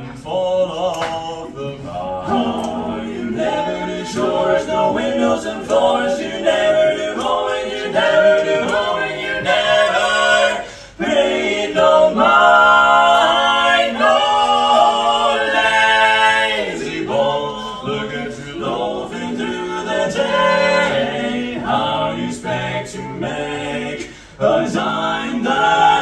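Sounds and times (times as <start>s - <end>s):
male quartet singing a cappella: 0.0s - 26.0s.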